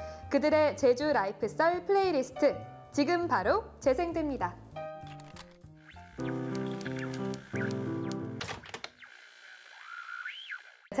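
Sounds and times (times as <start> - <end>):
electronic tone swooping: 9.0 - 11.0.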